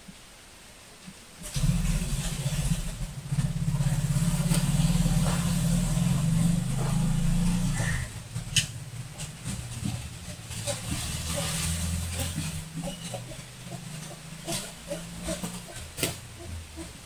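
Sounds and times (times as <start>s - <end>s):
engine running: 1.4s - 17.0s.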